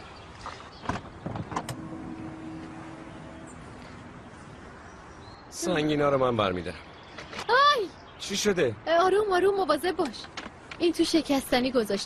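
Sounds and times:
electric motor hum: 0:01.6 - 0:04.7.

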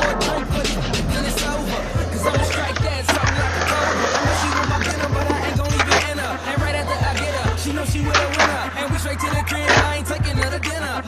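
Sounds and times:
rap music: 0:00.0 - 0:11.0
skateboard wheels rolling on concrete: 0:00.0 - 0:11.0.

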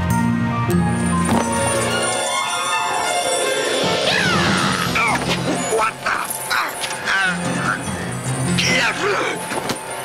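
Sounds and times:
cartoon background music: 0:00.0 - 0:09.5
high falling cries: 0:02.2 - 0:07.4.

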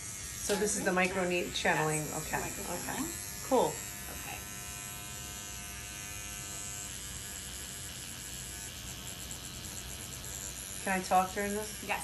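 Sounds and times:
electric microneedling pen buzzing: 0:00.0 - 0:12.0.

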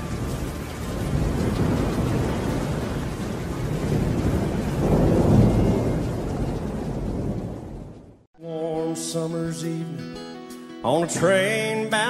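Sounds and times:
rumbling thunder: 0:00.0 - 0:08.3
steady rain: 0:00.0 - 0:08.3.

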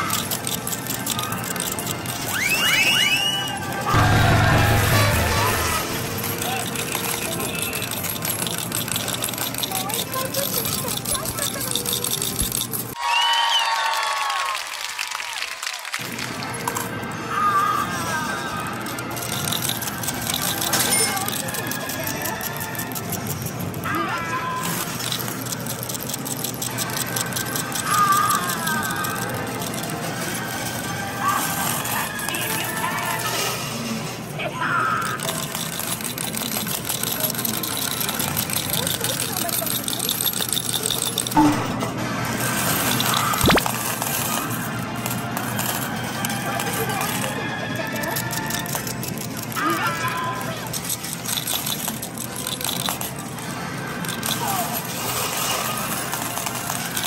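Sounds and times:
arcade game music and jingles: 0:00.0 - 0:13.0, 0:16.6 - 0:57.0
voices: 0:00.0 - 0:13.0, 0:17.2 - 0:43.6, 0:44.2 - 0:57.0.

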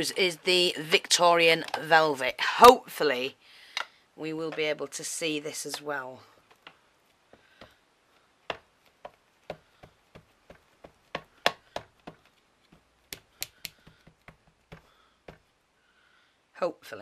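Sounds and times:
ink pad tapping on stamp: 0:13.1 - 0:15.5.

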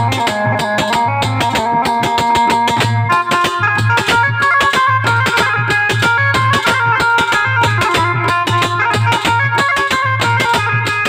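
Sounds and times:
hand drum beat: 0:00.0 - 0:11.0
harmonium reed chords: 0:00.0 - 0:11.0.

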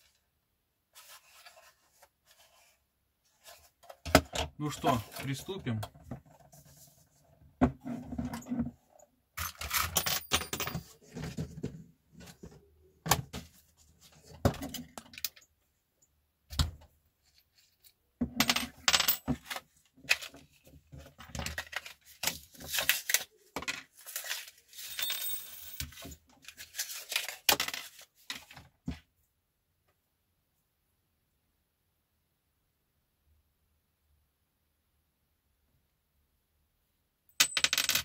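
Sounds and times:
rummaging in plastic tool case: 0:01.0 - 0:02.7, 0:03.3 - 0:07.0, 0:07.6 - 0:08.8, 0:09.4 - 0:15.5, 0:17.2 - 0:29.0.

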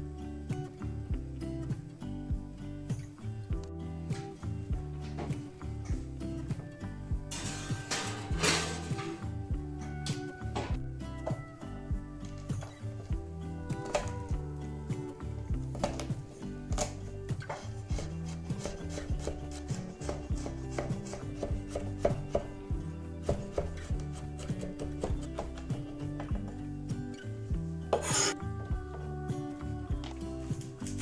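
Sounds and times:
knife chopping on wooden board: 0:16.8 - 0:22.6, 0:23.2 - 0:25.6.

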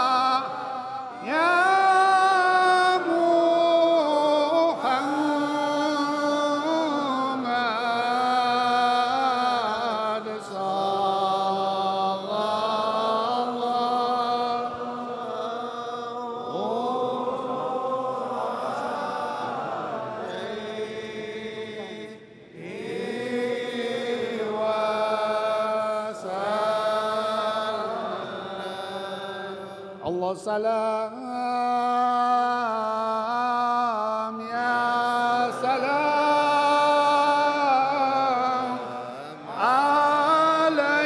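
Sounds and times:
devotional chanting: 0:00.0 - 0:41.0.

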